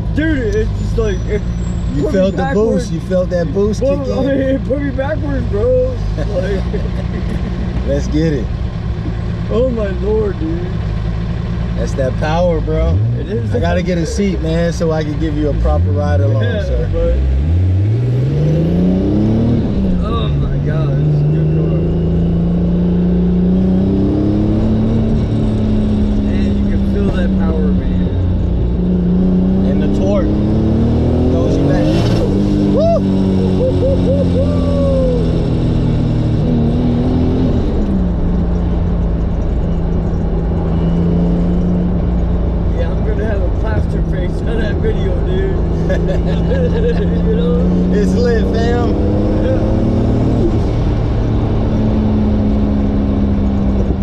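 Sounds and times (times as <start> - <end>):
car engine revving: 0.0 - 54.0.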